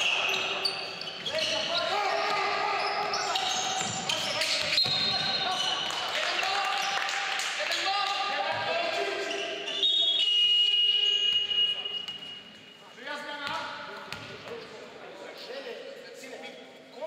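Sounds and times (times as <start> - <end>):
players' voices calling: 0.0 - 12.2.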